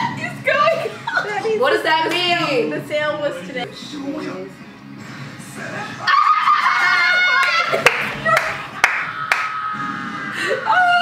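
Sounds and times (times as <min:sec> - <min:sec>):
young women laughing: 0:06.1 - 0:08.7
hand claps: 0:07.4 - 0:09.6.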